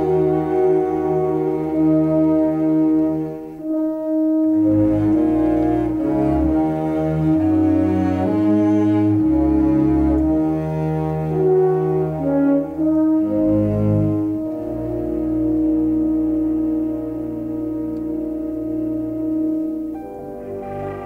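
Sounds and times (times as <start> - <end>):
brass holding long note: 0.0 - 21.0
orchestral film score music: 0.0 - 21.0.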